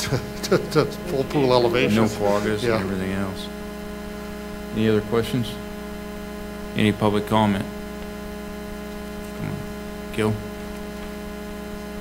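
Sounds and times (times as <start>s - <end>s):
electrical hum with hiss: 0.0s - 12.0s.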